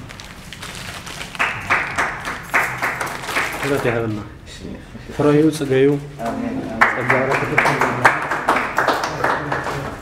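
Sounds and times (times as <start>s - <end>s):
small group clapping: 1.2s - 4.3s, 6.7s - 10.0s.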